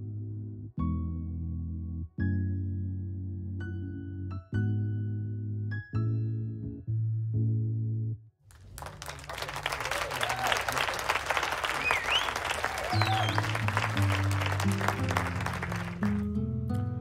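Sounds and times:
background music: 0.0 - 7.8, 11.8 - 17.0
crowd applause and cheering: 8.5 - 16.3
whistles: 9.0 - 16.0.

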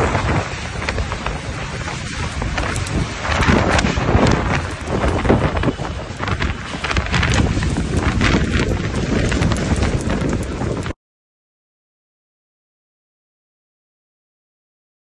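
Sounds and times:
rain hissing: 0.0 - 11.0
storm wind buffeting microphone: 0.0 - 11.0.

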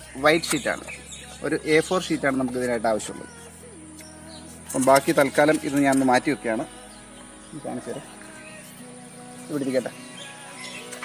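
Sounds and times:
insects humming: 0.0 - 11.0.

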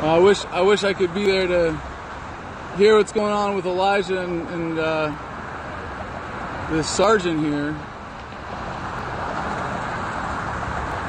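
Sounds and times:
highway traffic roar: 0.0 - 11.0.

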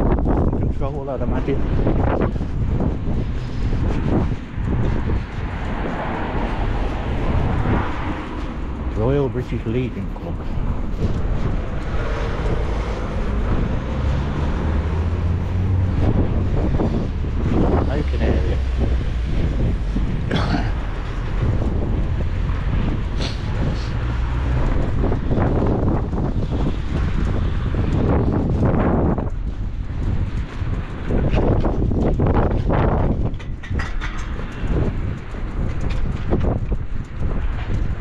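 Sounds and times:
road traffic: 0.0 - 38.0
wind buffeting microphone: 0.0 - 38.0.

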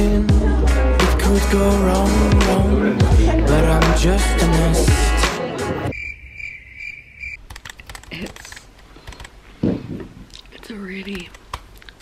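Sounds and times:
pulsing high chirping tone: 5.9 - 7.4.

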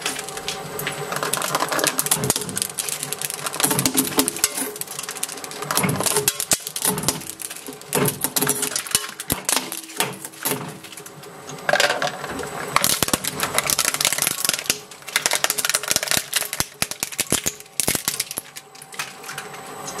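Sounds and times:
shredder crunching plastic: 0.0 - 20.0.

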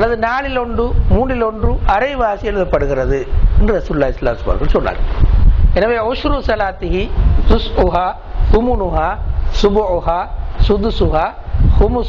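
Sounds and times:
man lecturing into a microphone: 0.0 - 12.0.

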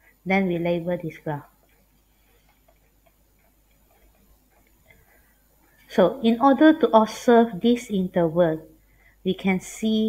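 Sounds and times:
pen ticking while writing: 1.6 - 5.1.

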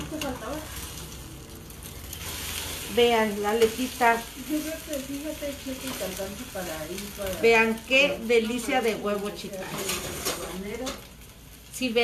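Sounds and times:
spatula turning egg: 0.0 - 11.2
egg sizzling in frying pan: 0.0 - 12.0.

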